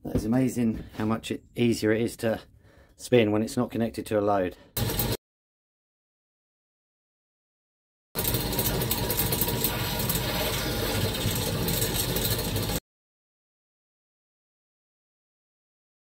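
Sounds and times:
electric motor screaming: 8.2s - 12.8s.

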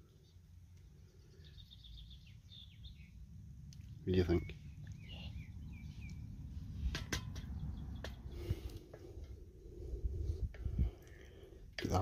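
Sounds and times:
small bird chirping: 0.0s - 8.8s.

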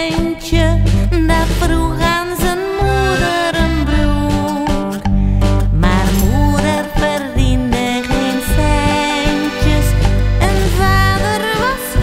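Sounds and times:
accordion: 0.0s - 12.0s
bass: 0.0s - 12.0s
guitar: 0.0s - 12.0s
woman singing: 0.0s - 12.0s.

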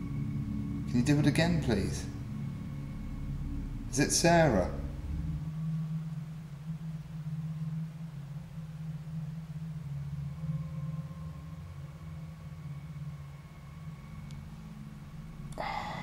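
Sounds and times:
faint thin whine: 0.0s - 16.0s
low hum: 0.0s - 16.0s.

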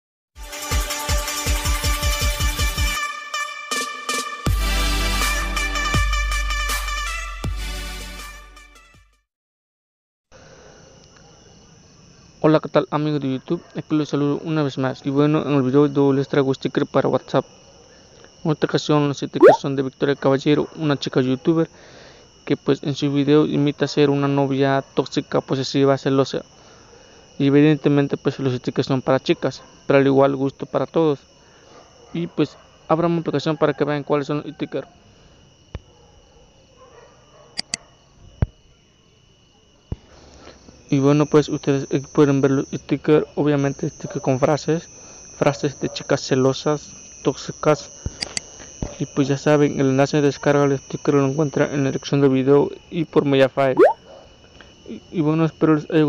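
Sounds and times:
faint high-pitched tone: 19.4s - 19.6s
short high chirps: 19.4s - 19.6s, 53.8s - 54.0s
thin high-pitched whine: 46.3s - 52.4s.

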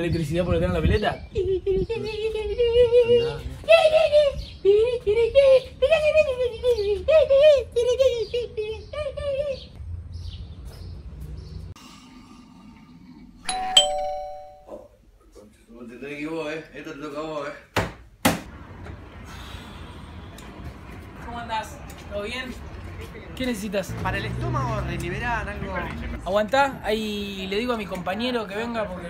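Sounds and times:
electronic doorbell chime: 13.5s - 14.8s.

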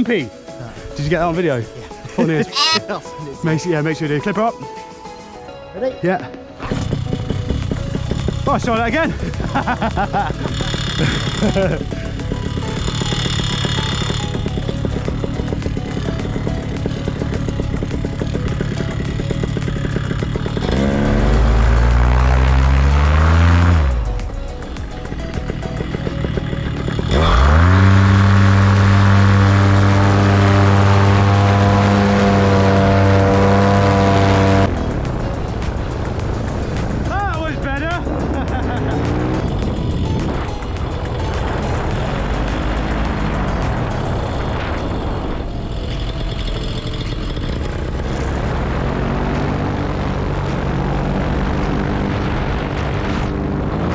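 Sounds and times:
paramotor engine revving: 6.8s - 37.1s, 38.0s - 53.9s.

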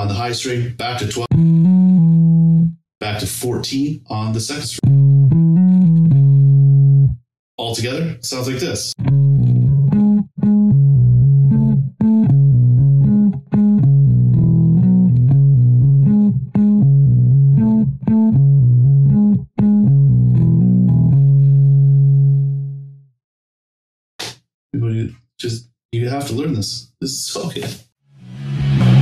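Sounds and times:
bass guitar riff: 1.1s - 2.8s, 4.8s - 7.2s, 9.0s - 23.0s, 28.2s - 29.0s.

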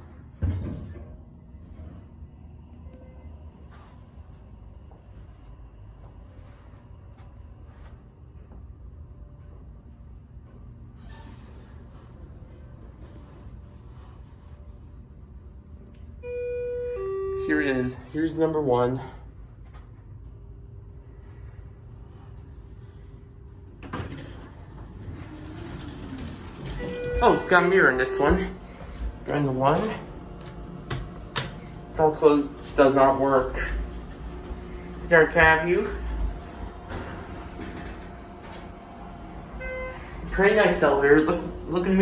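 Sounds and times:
faint steady hum: 0.0s - 10.9s, 11.7s - 42.0s
elevator doors sliding: 9.1s - 15.5s, 21.2s - 42.0s.

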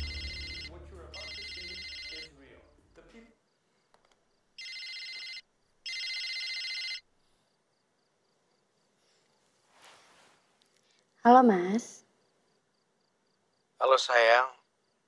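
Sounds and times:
low music: 0.0s - 1.9s
mobile phone ringtone: 0.0s - 2.3s, 4.6s - 7.1s.

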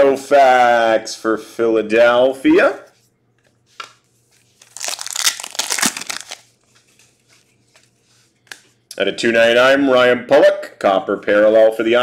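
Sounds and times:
card rustle: 3.4s - 8.8s.

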